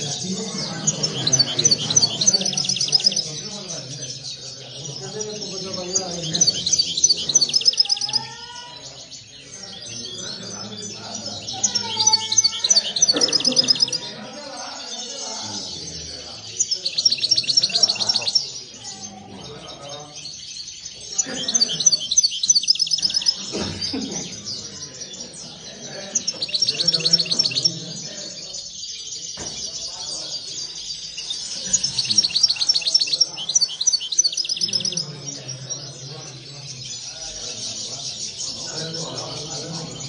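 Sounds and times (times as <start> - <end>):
goldfinches twittering trills: 0.0 - 40.0.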